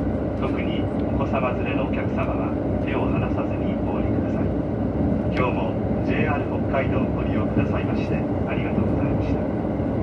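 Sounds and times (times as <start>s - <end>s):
diesel railcar rumble inside cabin: 0.0s - 10.0s.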